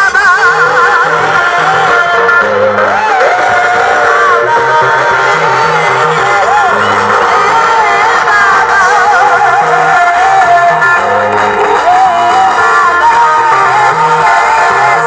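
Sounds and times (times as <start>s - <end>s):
keyboard: 0.0s - 15.0s
stepping bass line: 0.0s - 15.0s
church choir singing: 0.1s - 15.0s.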